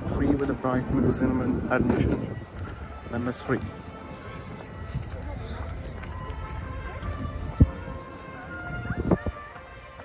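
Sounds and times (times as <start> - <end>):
faint music: 0.0 - 10.0
hubbub of voices: 0.0 - 10.0.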